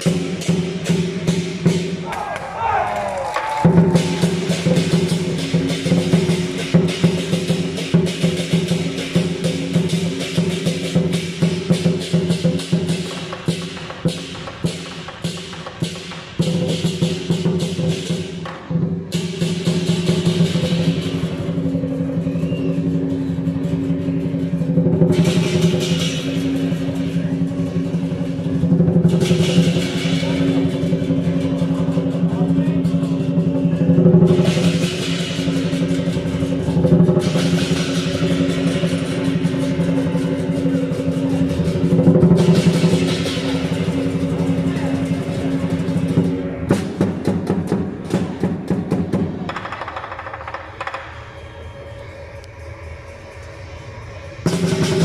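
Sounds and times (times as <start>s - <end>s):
cymbal crashes: 0.0s - 2.1s, 3.6s - 49.4s, 51.3s - 55.0s
drum: 0.0s - 51.2s, 54.4s - 55.0s
gong: 3.7s - 49.1s, 51.2s - 55.0s.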